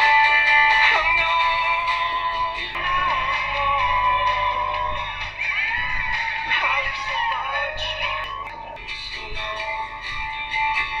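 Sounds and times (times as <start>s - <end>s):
pop-rock song with singing: 0.0s - 11.0s.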